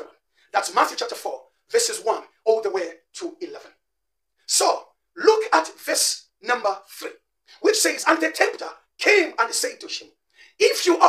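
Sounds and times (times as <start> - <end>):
man speaking: 0.0 - 3.8, 4.4 - 11.0.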